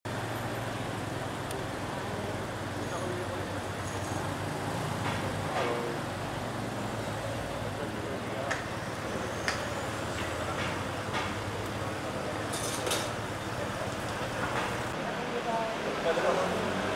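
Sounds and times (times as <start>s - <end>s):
street traffic noise: 0.0s - 16.9s
people talking: 1.5s - 6.1s, 6.7s - 16.9s.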